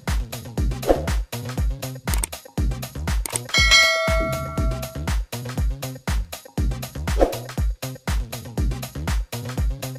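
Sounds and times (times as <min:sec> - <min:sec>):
notification bell ding: 0:03.4 - 0:05.1.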